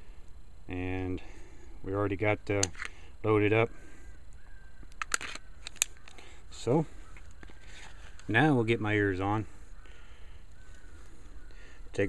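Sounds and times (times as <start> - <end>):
pistol clicks: 4.9 - 6.2.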